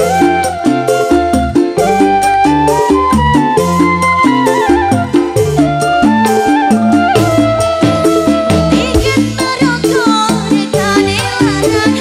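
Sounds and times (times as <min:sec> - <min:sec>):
bamboo flute melody: 0:00.0 - 0:09.7
bass notes: 0:00.0 - 0:12.0
drum beat: 0:06.2 - 0:10.2.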